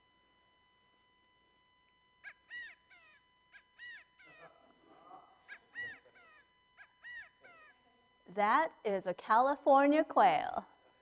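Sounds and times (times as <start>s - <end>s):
quail three-note call: 5.5s - 7.8s.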